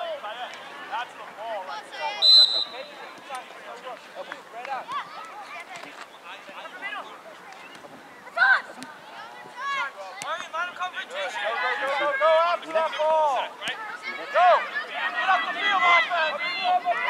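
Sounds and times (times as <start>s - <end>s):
referee's whistle blast: 2.2s - 2.9s
people shouting: 14.0s - 17.0s.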